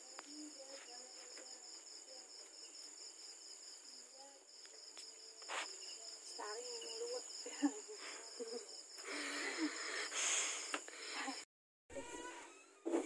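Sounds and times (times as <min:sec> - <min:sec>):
crickets chirping: 0:00.0 - 0:11.5.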